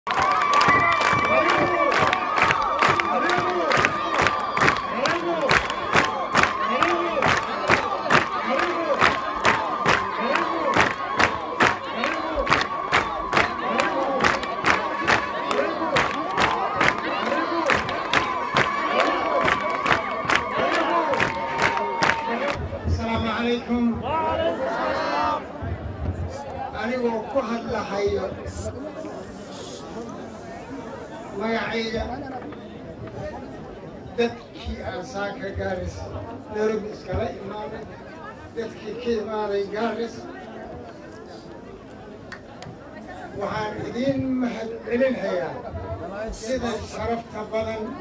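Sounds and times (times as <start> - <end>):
rhythmic hand-clapping: 0.1 - 22.6
crowd cheering and chanting: 0.1 - 28.7.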